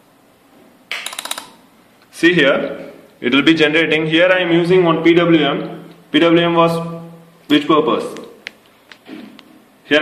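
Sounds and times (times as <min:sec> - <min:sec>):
rapid metallic clicks: 0:00.9 - 0:01.6.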